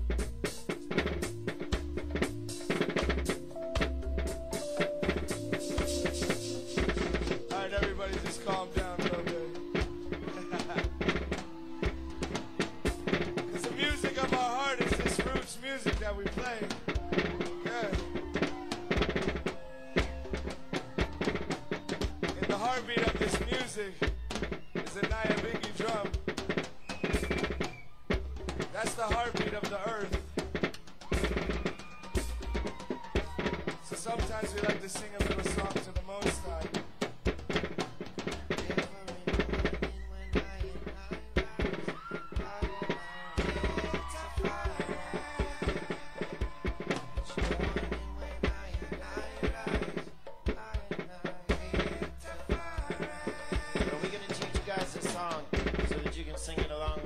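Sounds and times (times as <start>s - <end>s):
hand drums played fast: 0.0s - 57.0s
voices: 5.6s - 26.2s, 28.6s - 30.2s, 31.1s - 37.0s, 51.5s - 57.0s.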